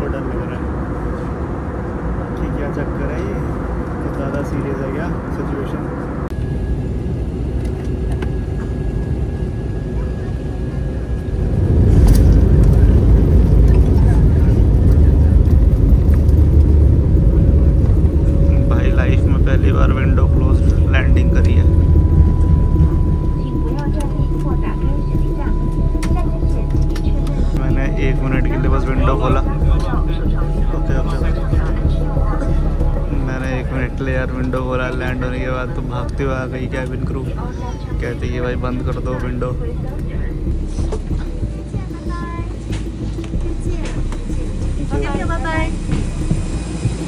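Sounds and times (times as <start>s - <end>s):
jet engine cabin drone: 0.0s - 47.0s
loud low landing rumble: 11.4s - 36.7s
faint voices: 12.4s - 46.4s.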